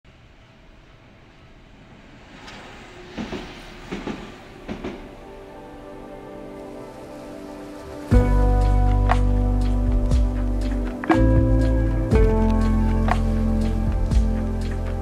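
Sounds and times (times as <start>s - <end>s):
low train rumble: 0.1s - 15.0s
music: 4.6s - 15.0s.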